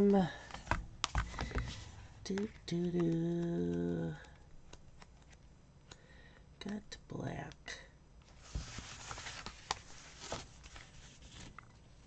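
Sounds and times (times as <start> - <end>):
paper rustling: 8.3 - 11.8.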